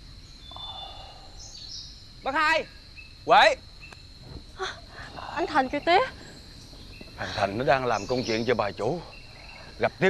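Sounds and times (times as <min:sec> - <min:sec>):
high-pitched insect drone: 0:00.0 - 0:10.0
bird chirps: 0:00.2 - 0:10.0
soft rustle: 0:03.8 - 0:08.6.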